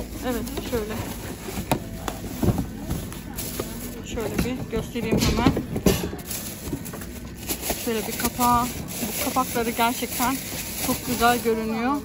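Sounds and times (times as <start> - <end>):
tissue paper and plastic rustling: 0.0 - 12.0.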